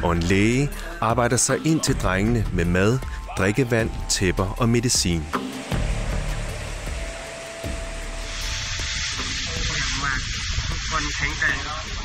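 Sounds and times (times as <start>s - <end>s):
low background music tone: 0.0s - 12.0s
steady hiss: 2.9s - 12.0s
steady rumble: 3.8s - 12.0s.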